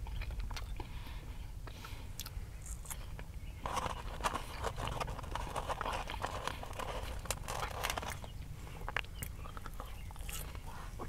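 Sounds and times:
person chewing food: 0.0s - 11.0s.

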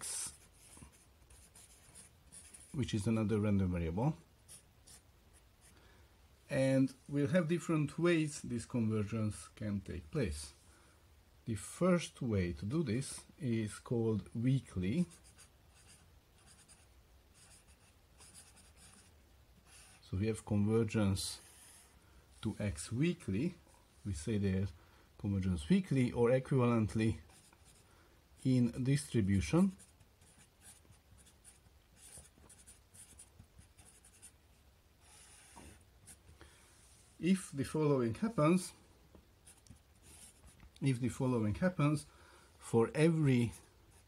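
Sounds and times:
marker scratching on surface: 0.0s - 2.8s, 4.5s - 5.7s, 15.0s - 20.0s, 21.4s - 21.9s, 28.4s - 36.3s, 39.4s - 40.6s.

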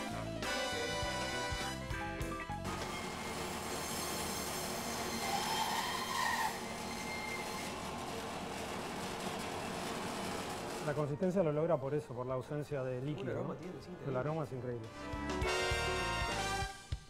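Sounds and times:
high-pitched blade whine: 2.7s - 7.9s.

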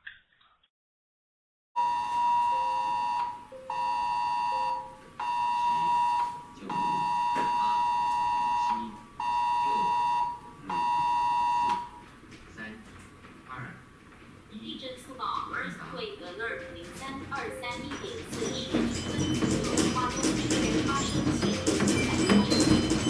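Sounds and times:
high electronic alarm tone: 1.8s - 12.0s.

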